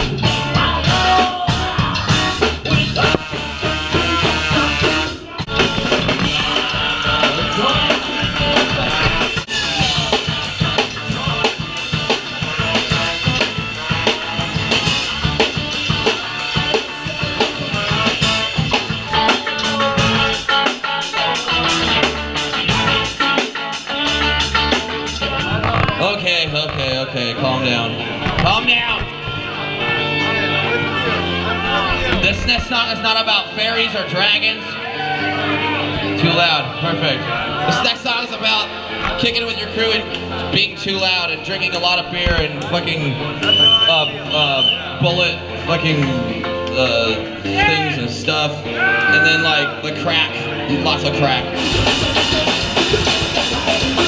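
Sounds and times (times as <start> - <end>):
drum kit: 0.0 - 26.9, 51.4 - 54.0
electric bass: 0.0 - 54.0
electric guitar: 0.0 - 54.0.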